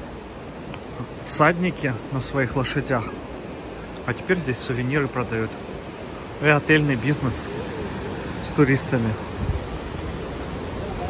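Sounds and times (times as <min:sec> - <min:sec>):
river rushing over rapids: 0:00.0 - 0:11.0.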